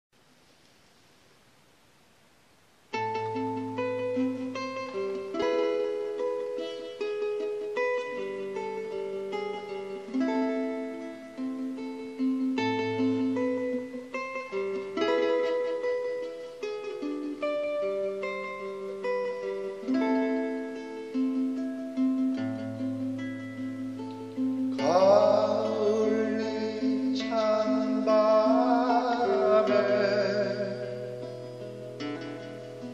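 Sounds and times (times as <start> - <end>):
fingerstyle classical guitar: 2.9 - 32.9.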